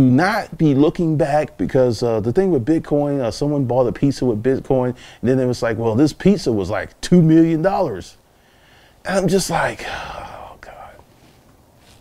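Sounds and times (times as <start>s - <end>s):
man whispering breathily: 9.5s - 11.2s.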